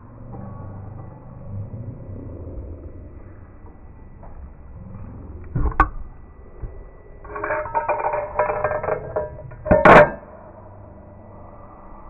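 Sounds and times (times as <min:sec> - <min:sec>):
glass bottle knocking on metal opener: 0:07.3 - 0:10.2.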